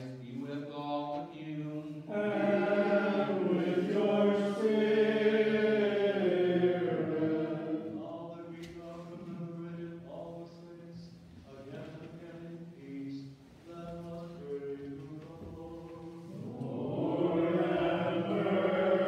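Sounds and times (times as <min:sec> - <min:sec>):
voices chanting in unison: 0:02.1 - 0:10.0, 0:14.0 - 0:19.0.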